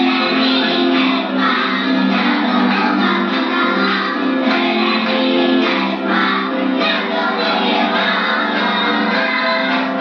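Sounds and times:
children singing: 0:00.0 - 0:10.0
musical accompaniment: 0:00.0 - 0:10.0.

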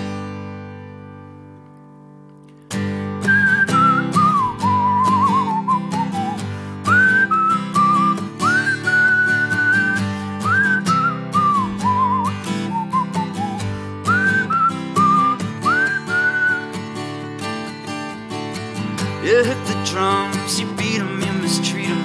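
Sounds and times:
guitar strumming: 0:00.0 - 0:22.0
whistled melody: 0:03.1 - 0:17.7.

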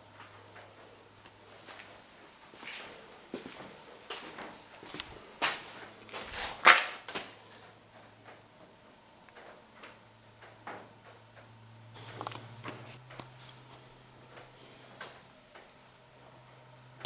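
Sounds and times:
footsteps on gritty concrete: 0:02.5 - 0:07.4.

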